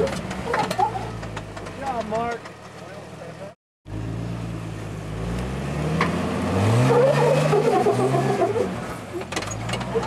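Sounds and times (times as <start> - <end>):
engine revving under load: 3.9 - 10.0.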